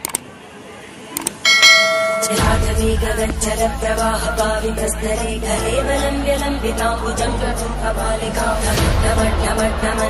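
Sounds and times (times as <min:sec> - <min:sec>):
notification bell ding: 0:01.5 - 0:02.7.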